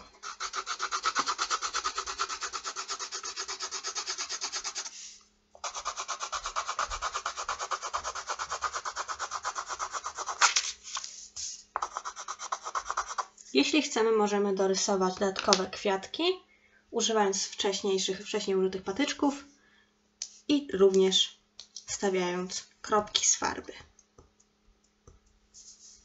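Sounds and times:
pencil scratching on paper: 0.0s - 13.4s.

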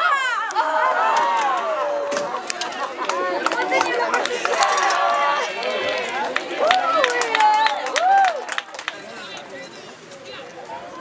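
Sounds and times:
people shouting and calling: 0.0s - 8.5s.

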